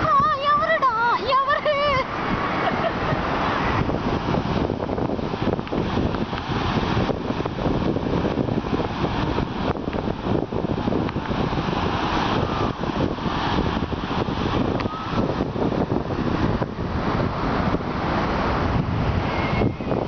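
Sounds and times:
breaking surf: 0:00.0 - 0:20.0
wind buffeting microphone: 0:00.0 - 0:20.0.

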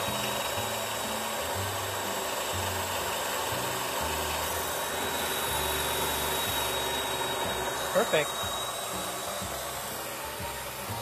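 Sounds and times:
tile saw cutting with high whine: 0:00.0 - 0:11.0.

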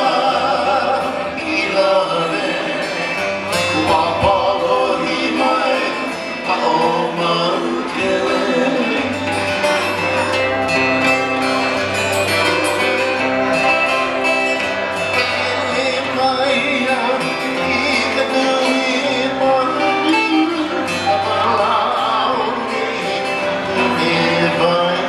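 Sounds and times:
acoustic guitar: 0:00.0 - 0:25.0
second guitar: 0:00.0 - 0:25.0
steel guitar: 0:00.0 - 0:25.0.

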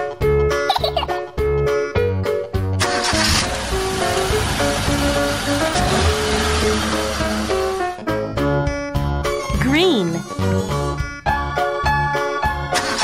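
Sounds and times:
background music: 0:00.0 - 0:13.0
car engine sound effect: 0:02.8 - 0:07.8.

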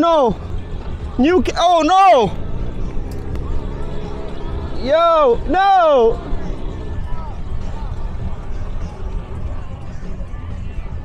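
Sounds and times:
distant people chatting: 0:00.0 - 0:11.0
steady low rumble: 0:00.2 - 0:11.0.

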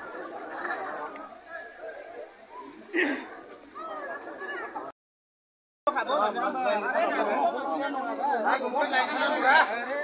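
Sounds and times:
crowd chattering: 0:00.0 - 0:05.0, 0:05.9 - 0:10.0.

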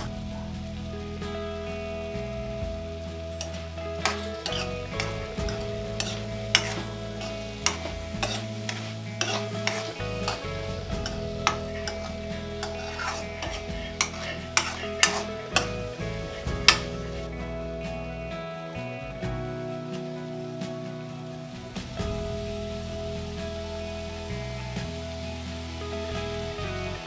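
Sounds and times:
soft background music: 0:00.0 - 0:27.0
soft sizzle: 0:00.0 - 0:27.0
spatula scraping metal pan: 0:04.0 - 0:10.4, 0:11.0 - 0:15.8.

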